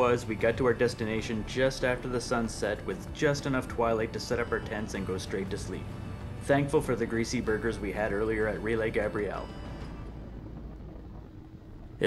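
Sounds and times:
motorcycle engine and road rumble: 0.0 - 12.0
wind noise: 0.0 - 12.0.

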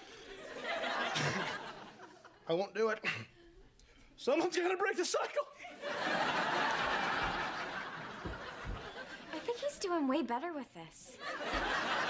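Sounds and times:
studio audience laughing: 0.2 - 2.4, 5.6 - 9.7, 11.2 - 12.0.

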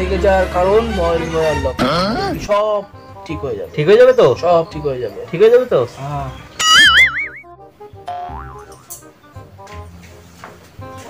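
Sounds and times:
light background music: 0.0 - 11.0
cartoon boing: 6.6 - 7.5, 8.1 - 9.0.

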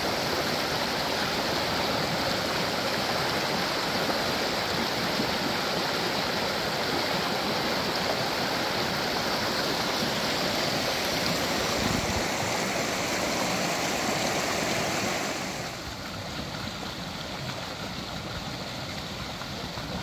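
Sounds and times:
creek water over rocks: 0.0 - 20.0.

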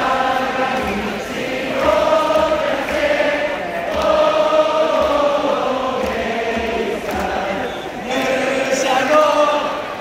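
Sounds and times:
stadium crowd singing: 0.0 - 10.0.

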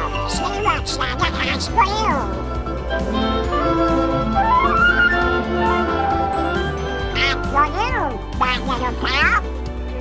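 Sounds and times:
cartoon duck quacking voice: 0.0 - 2.3, 7.1 - 9.5
orchestral music: 0.0 - 10.0.

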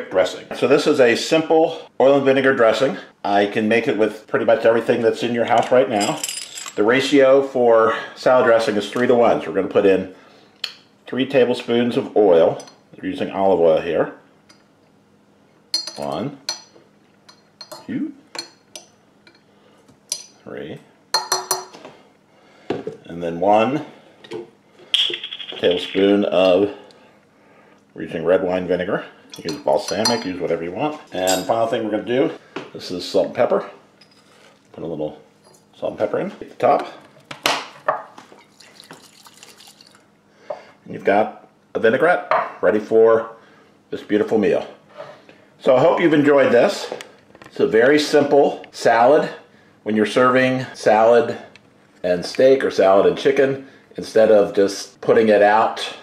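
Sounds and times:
liquid sloshing in glass carafe: 38.3 - 40.0.

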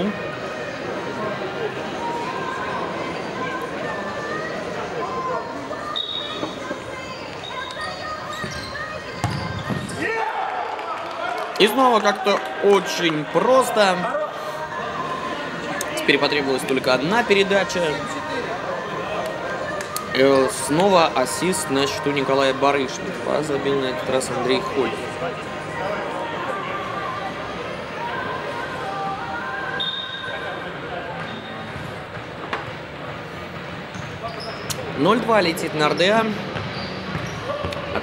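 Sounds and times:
players' voices: 0.0 - 38.0.

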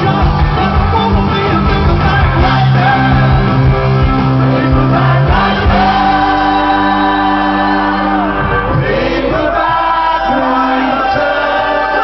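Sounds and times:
electric guitar: 0.0 - 12.0
live rock band playing: 0.0 - 12.0
voices singing sustained harmony: 4.6 - 12.0.

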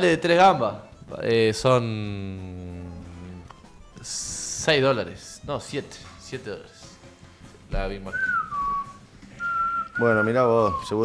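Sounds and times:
person whistling: 8.0 - 11.0.

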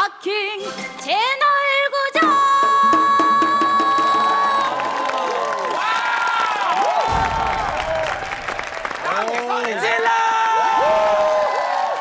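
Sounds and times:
music: 0.0 - 5.0
audience cheering and whooping: 3.7 - 12.0.

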